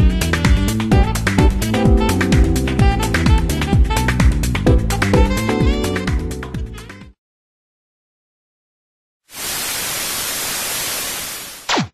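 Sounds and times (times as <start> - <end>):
loud static hiss: 9.3 - 11.8.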